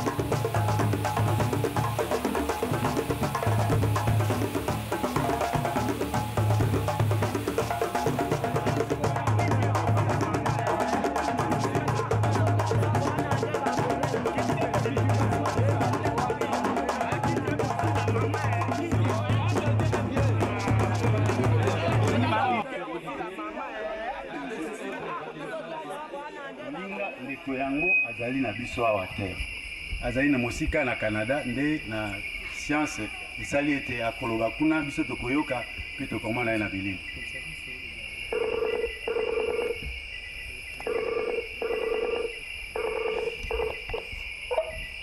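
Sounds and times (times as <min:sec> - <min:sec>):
night insects chorus: 0:00.0 - 0:24.5, 0:26.2 - 0:45.0
indistinct chatter of people: 0:08.1 - 0:38.3
video call warbling ring tone: 0:38.3 - 0:39.8, 0:40.8 - 0:44.1.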